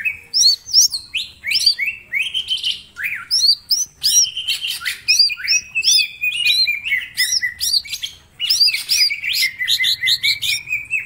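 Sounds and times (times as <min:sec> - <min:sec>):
bird singing whistled notes: 0:00.0 - 0:11.0.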